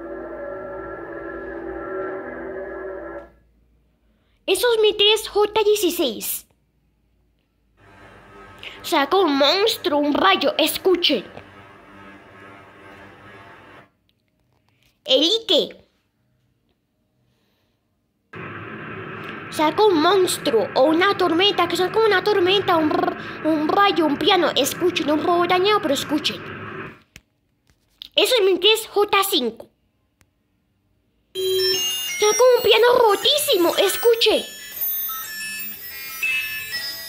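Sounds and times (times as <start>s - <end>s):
eerie electronic beeping tones: 0.0s - 3.3s, 18.4s - 27.0s
steady rushing noise: 18.4s - 27.0s.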